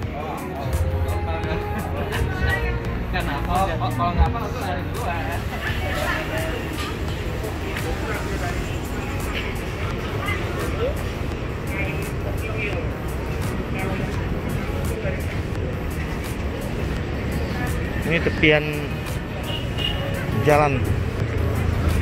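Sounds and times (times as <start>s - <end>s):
faint background chatter: 0.0s - 22.0s
low street rumble: 0.0s - 22.0s.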